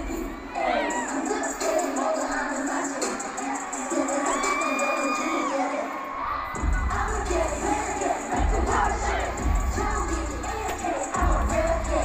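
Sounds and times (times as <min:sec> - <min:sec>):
amplified pop music: 0:00.0 - 0:12.0
crowd screaming and cheering: 0:00.0 - 0:12.0
heavy bass beat: 0:06.6 - 0:12.0.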